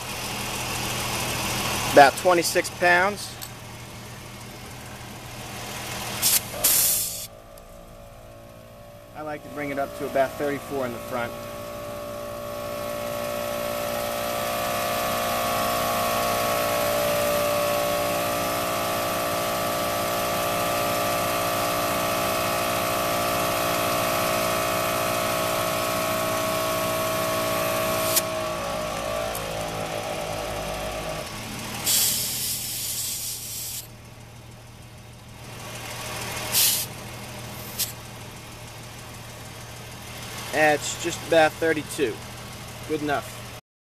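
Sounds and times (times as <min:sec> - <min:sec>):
air compressor running: 0:00.0 - 0:43.6
motors winding down: 0:05.8 - 0:32.8
air hissing at tire valve: 0:06.0 - 0:07.4, 0:27.7 - 0:28.4, 0:31.7 - 0:34.0, 0:36.4 - 0:38.0
low steady hum: 0:06.5 - 0:14.2.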